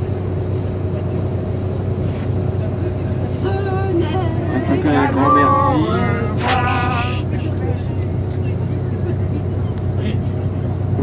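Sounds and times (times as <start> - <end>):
coach engine and tyre drone: 0.0 - 11.0.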